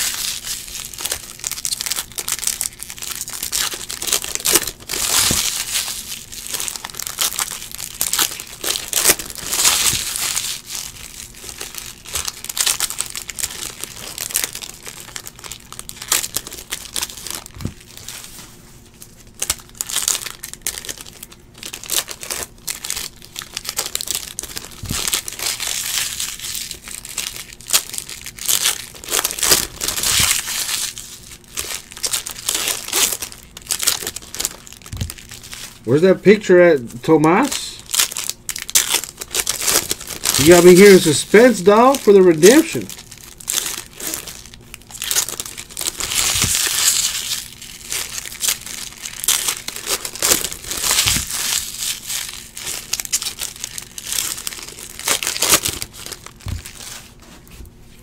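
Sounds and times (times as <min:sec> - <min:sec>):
foil wrappers crinkling and tearing: 0:00.0 - 0:57.8.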